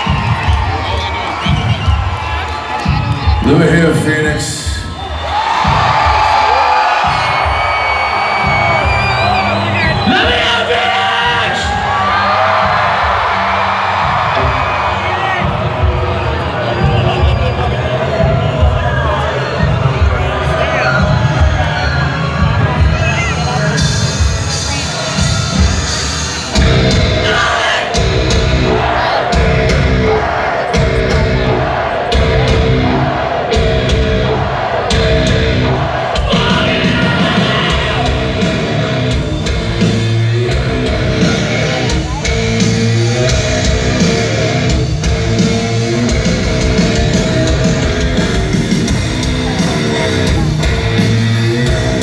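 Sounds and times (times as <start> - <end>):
crowd cheering and whooping: 0.0 - 3.7, 4.7 - 52.0
amplified rock band music: 0.0 - 52.0.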